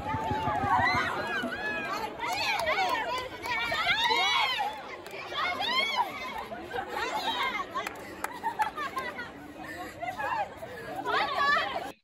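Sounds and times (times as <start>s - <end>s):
women chattering and laughing: 0.0s - 12.0s.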